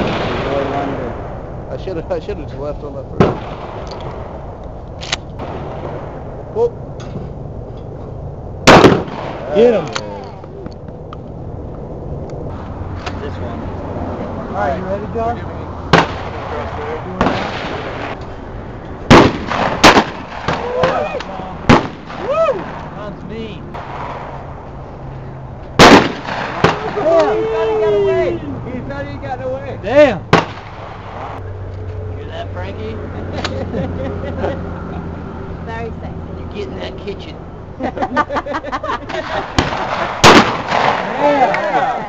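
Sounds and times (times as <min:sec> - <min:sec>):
shotgun firing: 0:00.0 - 0:01.3, 0:03.2 - 0:04.4, 0:08.6 - 0:09.8, 0:15.9 - 0:18.2, 0:19.1 - 0:21.1, 0:21.7 - 0:22.8, 0:25.8 - 0:27.1, 0:30.3 - 0:31.4, 0:39.3 - 0:41.2
sharp crack: 0:00.0 - 0:02.0, 0:03.1 - 0:07.2, 0:08.6 - 0:11.2, 0:15.9 - 0:18.4, 0:19.0 - 0:23.1, 0:23.7 - 0:24.8, 0:25.7 - 0:27.7, 0:30.3 - 0:31.4, 0:39.1 - 0:41.8.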